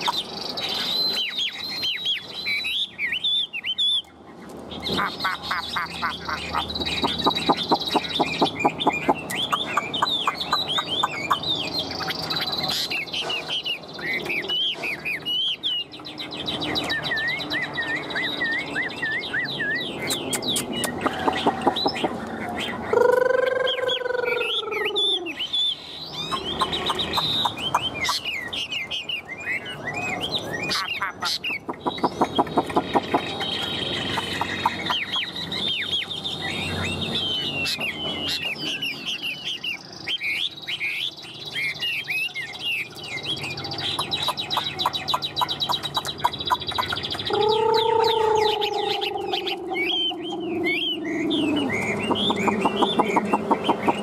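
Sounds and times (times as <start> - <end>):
bird singing whistled notes: 0.0 - 4.1, 4.9 - 22.1, 22.9 - 54.0
drawn-out arching bird call: 4.9 - 13.6, 20.0 - 28.6, 43.8 - 54.0
buzzy rattling bird phrases: 43.3 - 54.0.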